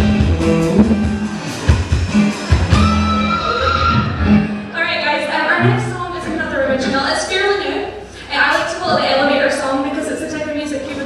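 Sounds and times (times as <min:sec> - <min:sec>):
drum hits: 0:00.0 - 0:03.0
live rock band playing: 0:00.0 - 0:04.7.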